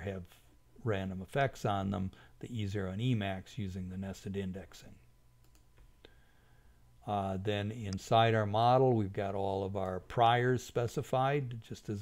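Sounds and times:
faint clicks: 5.4 - 6.2.

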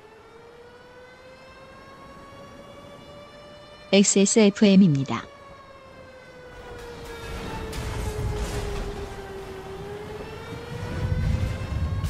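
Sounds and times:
siren wailing: 0.0 - 12.0.

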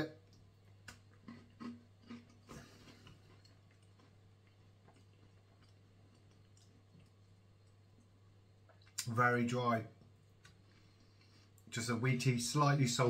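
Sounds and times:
low steady hum: 0.0 - 13.0
crunching of chewing a dry bar: 0.3 - 8.1.

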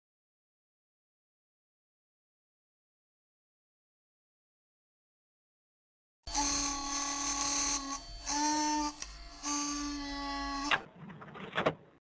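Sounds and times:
electric buzz logo sound: 6.3 - 10.7.

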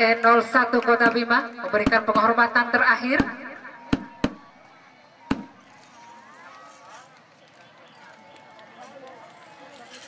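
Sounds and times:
faint crowd chatter: 0.0 - 10.0.

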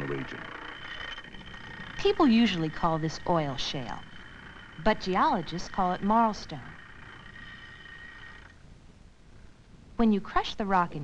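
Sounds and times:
masonry saw blade whine: 0.0 - 8.7.

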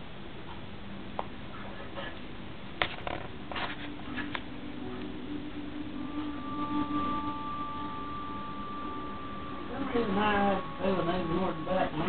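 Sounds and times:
held musical tones from television: 1.6 - 12.0.

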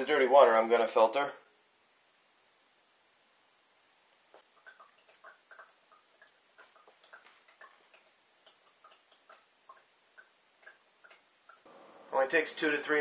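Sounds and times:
water dripping into a glass: 4.4 - 11.7.

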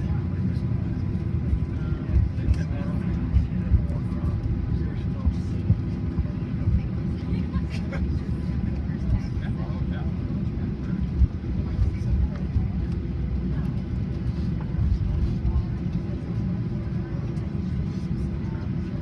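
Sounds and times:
aircraft cabin rumble: 0.0 - 19.0
passenger chatter: 0.0 - 19.0.

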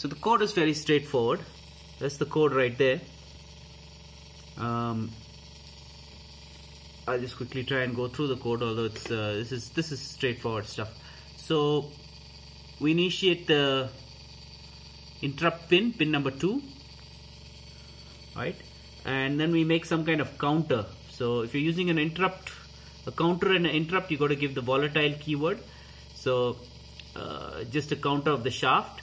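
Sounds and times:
low background hum: 0.0 - 29.0
thin high whine: 0.0 - 29.0.

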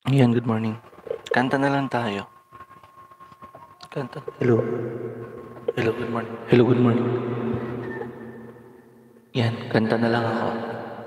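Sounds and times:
man speaking into microphone: 0.0 - 2.3, 3.8 - 5.0, 5.6 - 7.6, 9.3 - 10.8
faint low hum: 0.0 - 11.0.

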